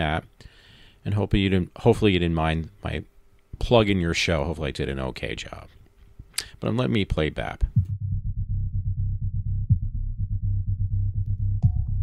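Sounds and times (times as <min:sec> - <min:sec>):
fast low bass pulse: 0:07.6 - 0:12.0.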